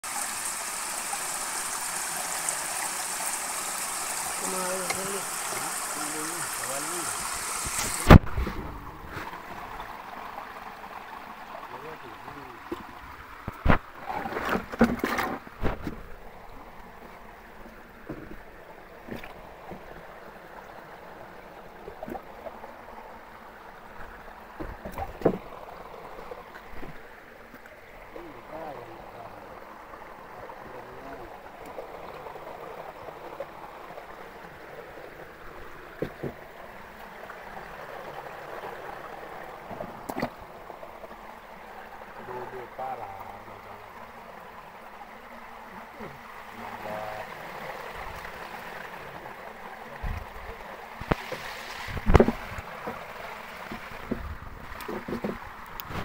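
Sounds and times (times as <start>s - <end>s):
shallow water rushing: 0.0s - 56.0s.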